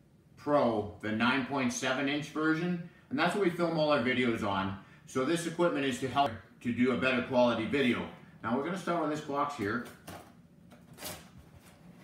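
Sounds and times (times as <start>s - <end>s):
knife slitting packing tape: 10.8s - 11.7s.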